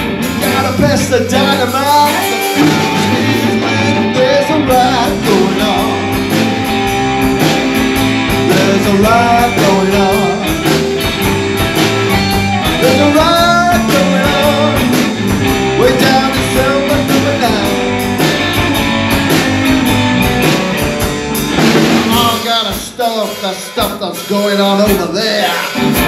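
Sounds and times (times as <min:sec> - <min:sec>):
electric guitar bent notes: 0:00.0 - 0:26.0
rock band playing: 0:00.0 - 0:26.0.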